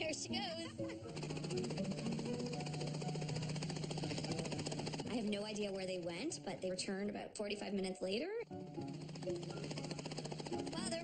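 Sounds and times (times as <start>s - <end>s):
low engine hum: 0.0s - 6.3s
faint music: 0.0s - 11.0s
helicopter rotor beating: 0.0s - 11.0s.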